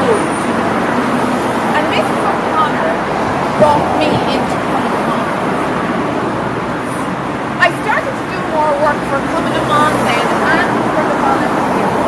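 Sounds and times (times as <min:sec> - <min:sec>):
road traffic noise: 0:00.0 - 0:12.0.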